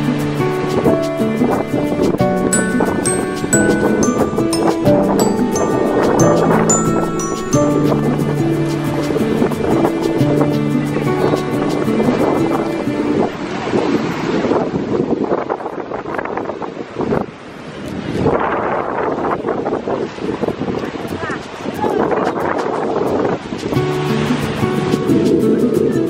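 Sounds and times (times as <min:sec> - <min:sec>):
background music with held notes: 0:00.0 - 0:14.2, 0:23.6 - 0:26.0
wind buffeting microphone: 0:07.8 - 0:26.0.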